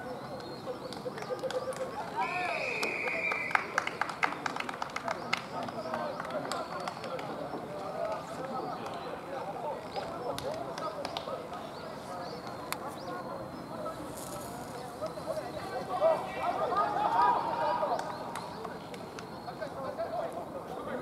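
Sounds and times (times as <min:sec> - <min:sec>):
men talking and calling out: 0:05.1 - 0:21.0.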